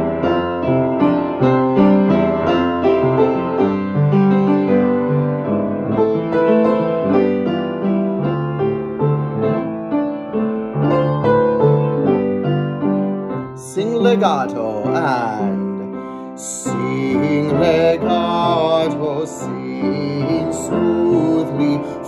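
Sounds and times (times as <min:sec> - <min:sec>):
piano playing chords: 0:00.0 - 0:22.0.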